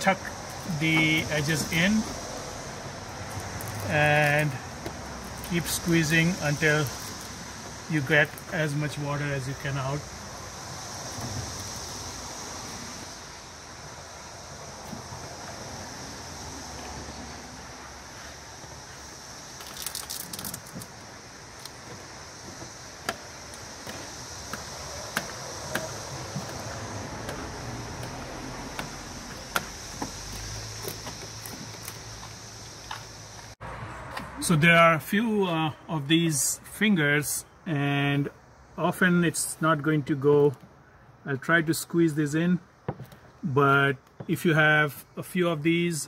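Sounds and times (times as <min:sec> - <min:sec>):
steady high hiss: 0:00.0 - 0:33.6.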